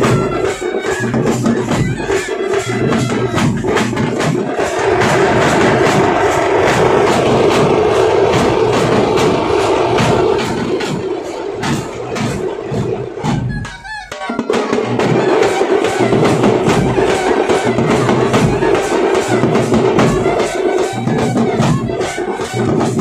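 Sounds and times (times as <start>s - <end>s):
frame drums and bass drums beating: 0.0s - 23.0s
horn sustained drone: 4.5s - 13.2s.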